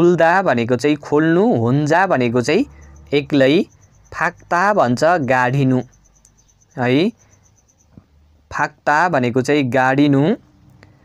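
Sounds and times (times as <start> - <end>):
high-pitched cricket-like chirping: 0.2 - 9.5.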